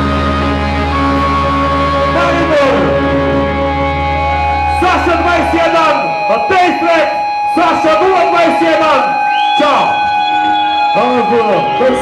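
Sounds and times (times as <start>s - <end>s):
steady ringing stage tones: 0.0s - 12.0s
man shouting into microphone: 2.1s - 3.1s, 10.9s - 12.0s.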